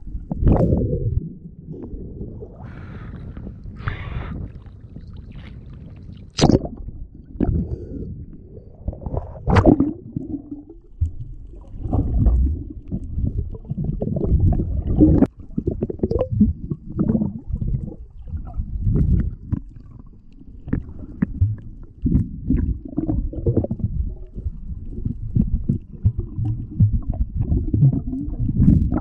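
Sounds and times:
low rumbling underwater movement: 0.0 - 29.0.

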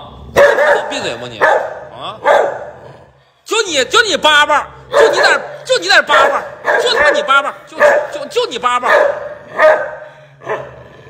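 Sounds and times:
dog barking: 0.3 - 2.8, 4.9 - 10.9.

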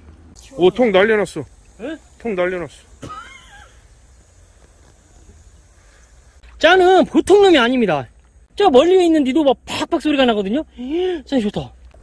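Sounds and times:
insects chirping: 0.3 - 12.0.

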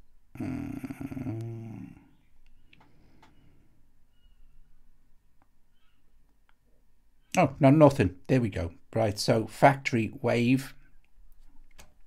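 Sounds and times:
man humming umm: 0.3 - 2.2.

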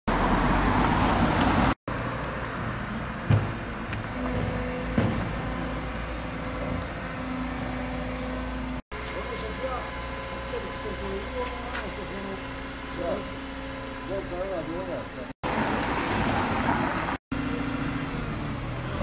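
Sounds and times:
excavator diesel engine running: 1.5 - 19.0
sharp metallic knocks: 2.6 - 8.7.

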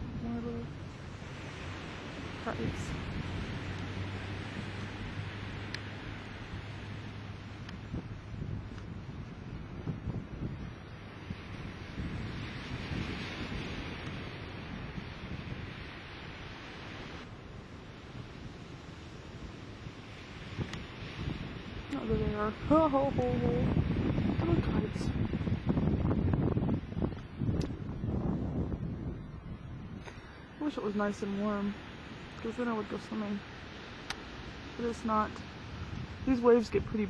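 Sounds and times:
ocean surf: 0.0 - 37.0
wind on microphone: 0.0 - 37.0.

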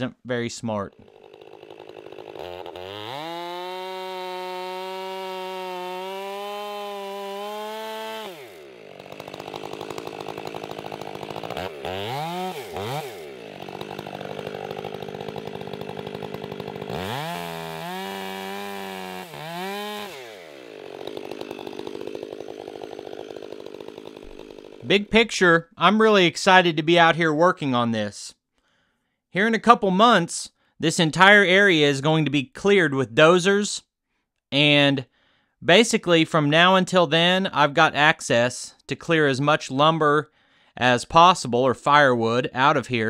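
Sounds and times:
chainsaw revving and idling: 0.9 - 25.3.

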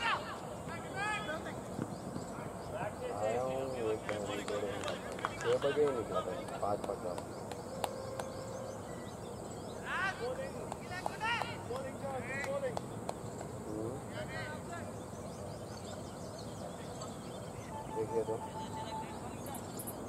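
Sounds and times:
steady outdoor hiss: 0.0 - 20.0.

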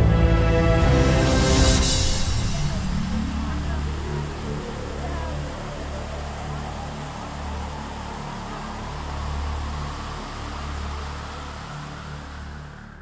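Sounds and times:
background music with deep bass: 0.0 - 13.0
waterfall rushing: 0.0 - 13.0.

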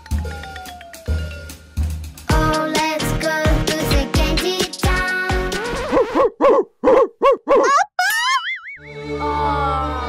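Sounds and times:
rising wavering whistle effect: 0.0 - 1.7
children's pop song: 2.2 - 5.9
cartoon boing effects: 7.6 - 8.9.

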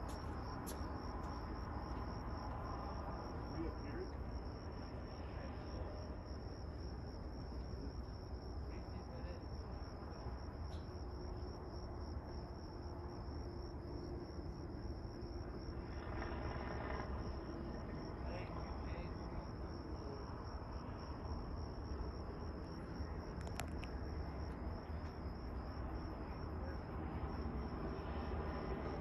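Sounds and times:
crickets chirping: 0.0 - 29.0.

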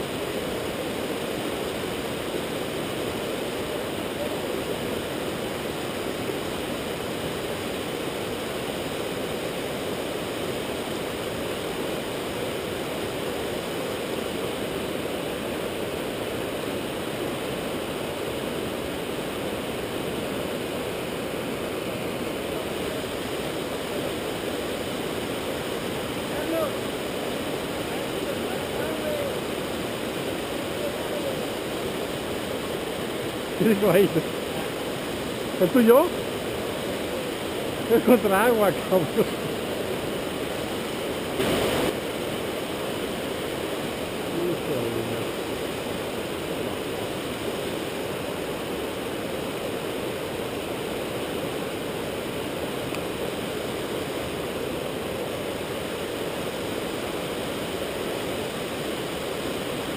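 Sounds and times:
water rushing over rocks: 0.0 - 59.9.

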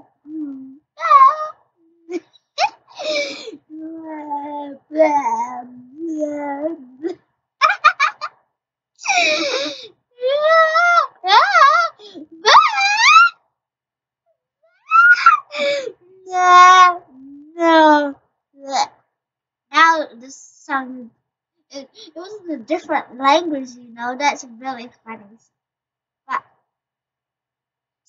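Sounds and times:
person making high playful vocal sound: 0.0 - 2.2, 3.0 - 8.2, 9.0 - 13.3, 14.9 - 18.1
high voice: 0.0 - 8.3, 9.0 - 13.3, 14.9 - 18.9, 19.8 - 21.1, 21.8 - 25.4
girl squealing: 0.4 - 1.5, 9.0 - 13.4, 14.9 - 17.0.

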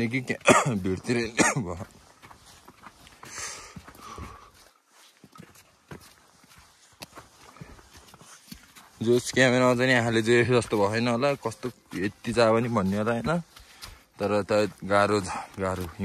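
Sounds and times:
footsteps on snow: 0.0 - 16.0.

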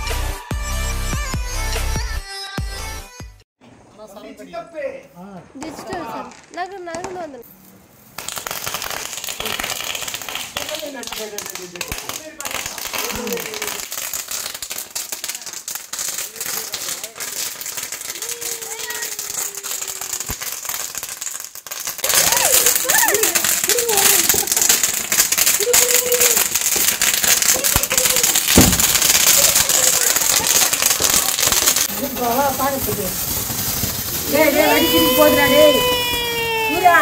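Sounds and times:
firecrackers crackling: 5.5 - 37.0
steady hiss: 31.6 - 37.0.

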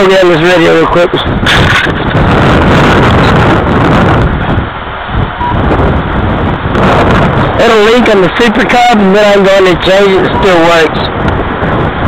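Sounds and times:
gusty wind buffeting microphone: 0.0 - 12.0.

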